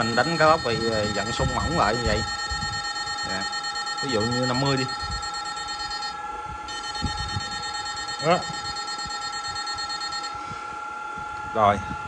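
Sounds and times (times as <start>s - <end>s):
high-pitched electronic whine: 0.0s - 12.0s.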